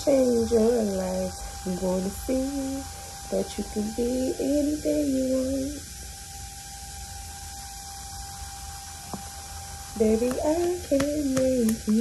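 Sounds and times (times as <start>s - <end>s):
background hiss: 0.0s - 12.0s
low hum: 0.0s - 12.0s.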